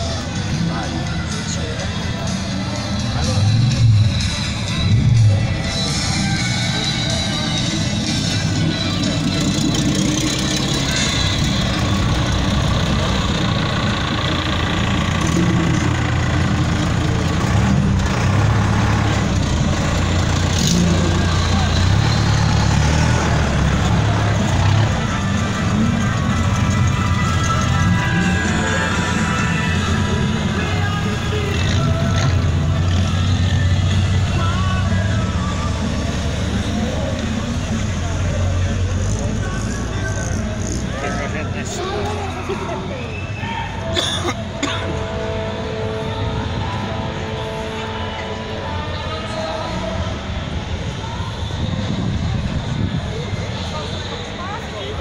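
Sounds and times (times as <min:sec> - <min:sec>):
music playing: 0:00.0 - 0:52.4
people talking: 0:00.0 - 0:55.0
vehicle engines running: 0:00.0 - 0:55.0.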